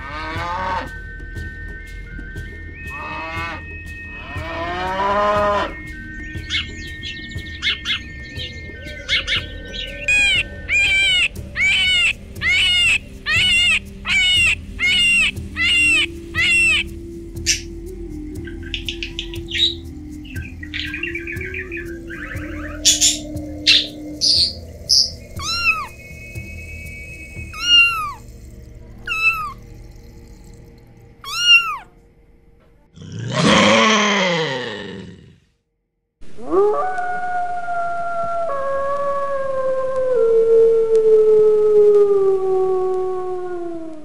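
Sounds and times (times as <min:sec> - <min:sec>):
wolf howling: 0:07.7 - 0:16.9, 0:21.4 - 0:26.0, 0:27.5 - 0:28.3, 0:29.0 - 0:30.1, 0:31.2 - 0:31.9, 0:33.0 - 0:35.3, 0:36.4 - 0:44.0
drawn-out call falling in pitch: 0:09.0 - 0:17.7, 0:18.5 - 0:26.5, 0:27.2 - 0:31.9
parrot chirps and squawks: 0:09.1 - 0:16.9, 0:22.8 - 0:26.0, 0:27.6 - 0:28.3, 0:29.1 - 0:29.7, 0:31.2 - 0:31.9
kitten meowing: 0:10.1 - 0:16.8, 0:25.4 - 0:25.9, 0:27.6 - 0:28.2, 0:29.1 - 0:29.6, 0:31.2 - 0:31.9.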